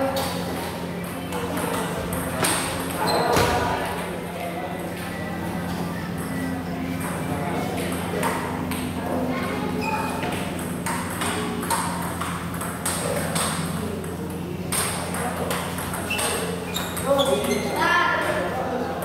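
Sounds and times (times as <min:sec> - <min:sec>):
steady low hum: 0:00.0 - 0:19.0
table tennis ball clicks: 0:10.2 - 0:17.6.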